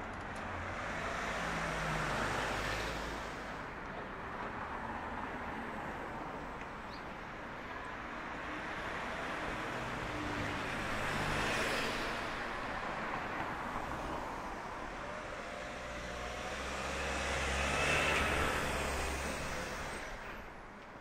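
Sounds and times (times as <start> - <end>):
cars driving past: 7.9 - 21.0.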